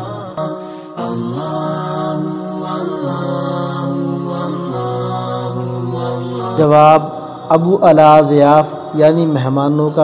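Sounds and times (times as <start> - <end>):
devotional vocal chant: 0.0 - 10.0.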